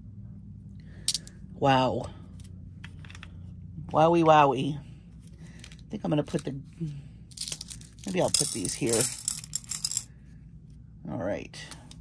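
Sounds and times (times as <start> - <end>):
glass beads rattling into plastic tray: 7.4 - 10.1.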